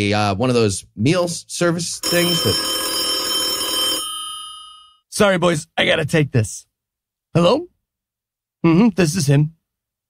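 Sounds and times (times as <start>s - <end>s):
telephone bell ringing: 2.0s - 5.0s.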